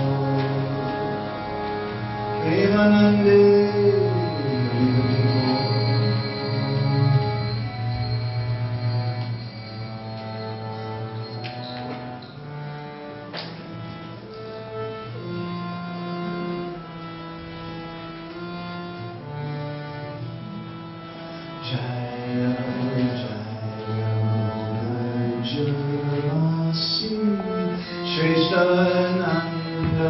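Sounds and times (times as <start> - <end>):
slow instrumental melody: 0.0 - 30.0.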